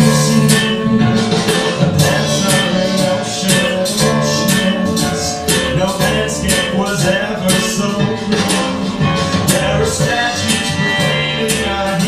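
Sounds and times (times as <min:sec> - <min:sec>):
man singing into a microphone: 0:00.0 - 0:12.0
rhythmic instrumental accompaniment: 0:00.0 - 0:12.0.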